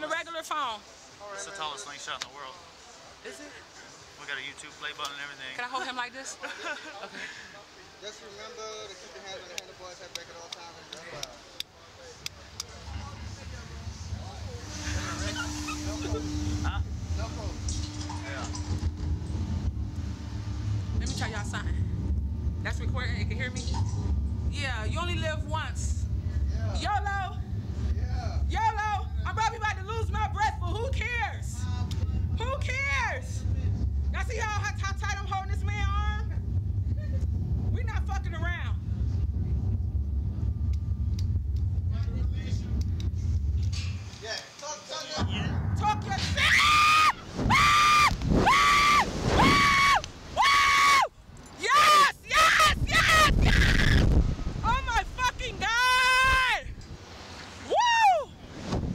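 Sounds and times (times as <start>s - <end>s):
steady low hum: 11.2s - 44.4s, 45.0s - 50.4s.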